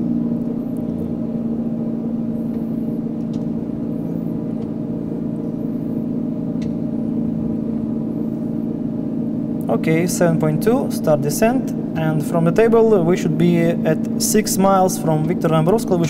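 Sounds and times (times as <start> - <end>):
aircraft engine drone: 0.0 - 16.0.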